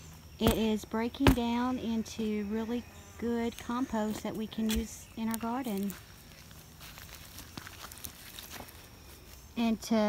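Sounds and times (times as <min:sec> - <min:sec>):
soft footsteps on leaf litter: 0:03.4 - 0:09.9.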